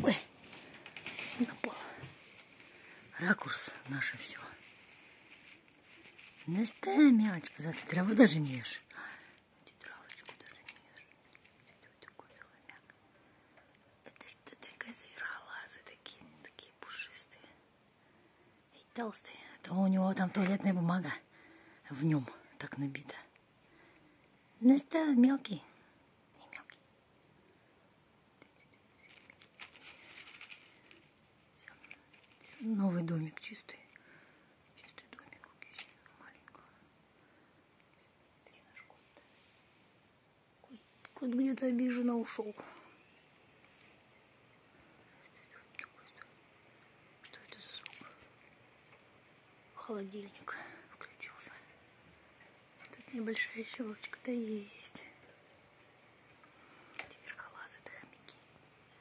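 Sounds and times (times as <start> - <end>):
person whispering: 0.0 - 0.4, 1.1 - 2.3, 3.1 - 4.8, 5.4 - 13.0, 14.0 - 17.6, 18.7 - 23.3, 24.6 - 26.8, 31.6 - 34.0, 34.8 - 36.9, 38.4 - 39.4, 40.6 - 43.1, 45.1 - 46.4, 47.2 - 48.3, 49.8 - 51.8, 52.8 - 55.3, 57.0 - 58.6
hamster rustling in bedding: 4.1 - 8.6, 29.1 - 31.0.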